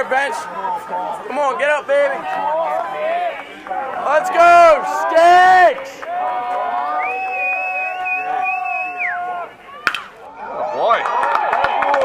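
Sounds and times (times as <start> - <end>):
players yelling: 0.0 - 12.0.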